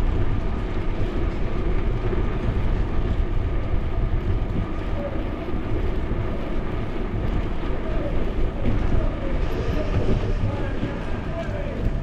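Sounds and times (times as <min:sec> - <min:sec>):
bicycle tyre noise on road: 0:00.0 - 0:12.0
wind buffeting microphone: 0:00.0 - 0:12.0.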